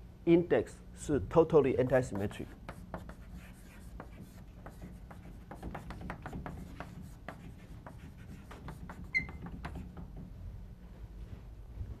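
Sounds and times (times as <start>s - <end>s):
chalk scratching on chalkboard: 1.9s - 10.2s.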